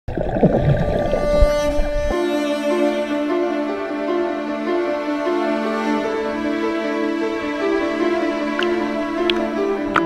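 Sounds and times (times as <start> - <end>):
muffled underwater rumbling: 0.1 - 2.3
soft string music: 0.4 - 10.0.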